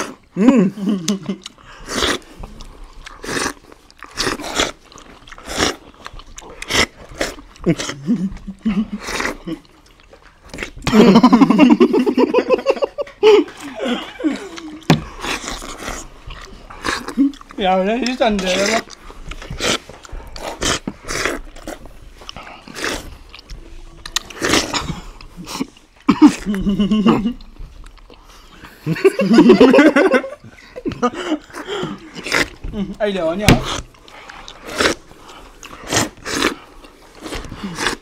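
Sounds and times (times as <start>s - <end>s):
mouth smacking: 13.1s - 28.8s
loud slurping: 33.5s - 38.0s.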